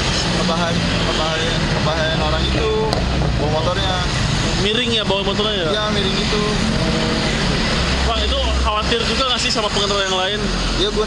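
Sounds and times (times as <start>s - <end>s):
car driving past: 0.0s - 9.3s
deeper rumble: 0.0s - 9.8s.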